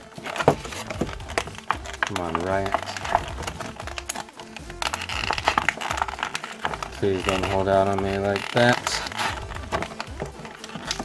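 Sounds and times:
background music: 0.0s - 11.0s
plastic blister tray crinkling: 0.0s - 11.0s.

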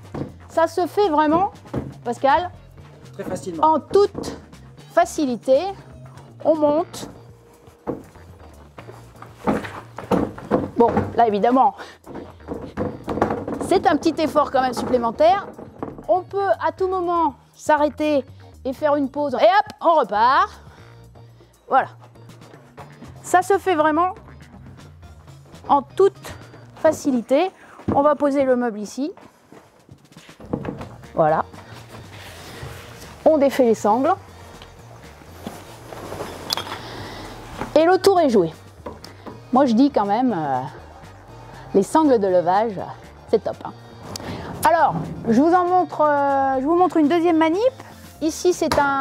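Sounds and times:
wooden cabinet knocking: 0.0s - 0.5s, 1.2s - 2.2s, 3.3s - 4.6s, 7.8s - 16.4s, 30.4s - 31.6s
furniture thud on concrete: 0.0s - 0.6s, 1.2s - 2.4s, 3.2s - 4.5s, 6.9s - 16.4s, 30.4s - 32.0s
shuffling footsteps: 5.7s - 16.2s, 24.7s - 39.6s.

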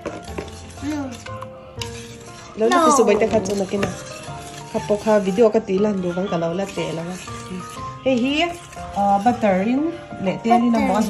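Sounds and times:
light background music: 0.0s - 11.0s
whisk beating batter in bowl: 0.0s - 11.0s.

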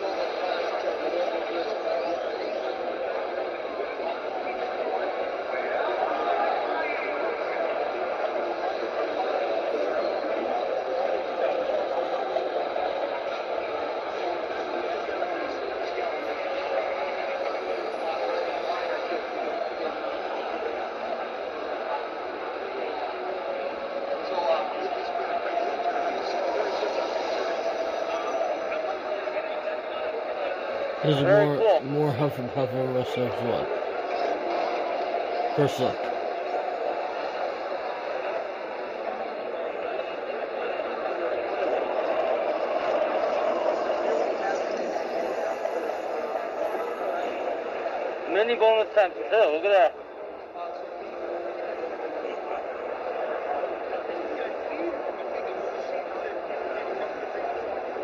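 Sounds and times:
murmur of voices: 0.0s - 58.0s.

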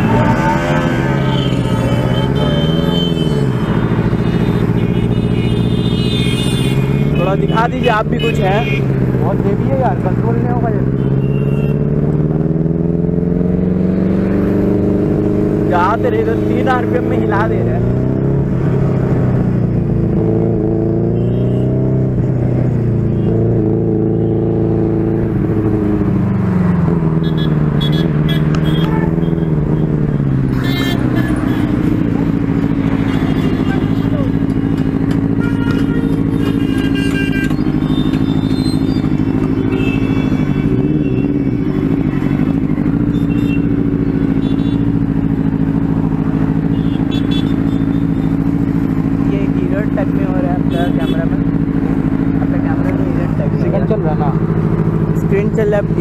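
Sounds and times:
motorcycle engine revving and idling: 0.0s - 56.0s.

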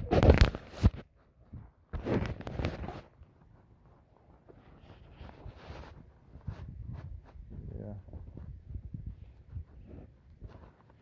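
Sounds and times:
phone rubbing against clothing: 1.9s - 3.2s, 4.2s - 11.0s.

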